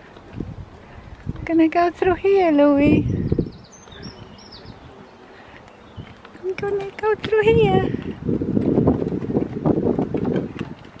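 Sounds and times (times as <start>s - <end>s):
small songbird chirping: 2.6s - 7.0s.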